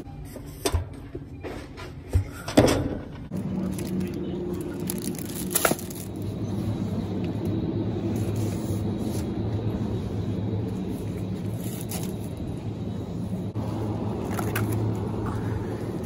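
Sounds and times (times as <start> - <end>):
low hum and rumble: 2.3 - 16.0.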